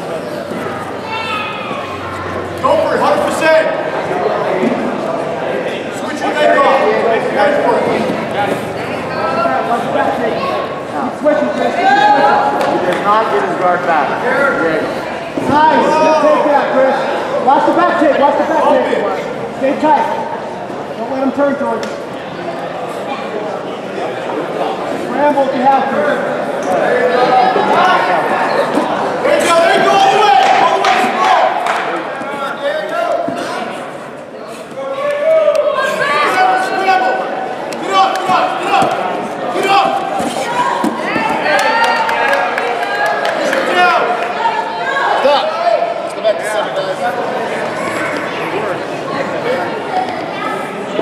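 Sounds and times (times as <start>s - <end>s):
people talking and calling out: 0.0s - 51.0s
voices shouting in a hall: 0.0s - 51.0s.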